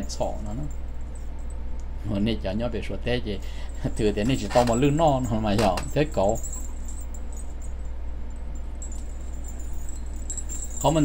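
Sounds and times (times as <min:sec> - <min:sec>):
faint jingling of coin dangles: 0:00.0 - 0:01.8, 0:03.4 - 0:11.0
low electrical hum: 0:00.0 - 0:11.0.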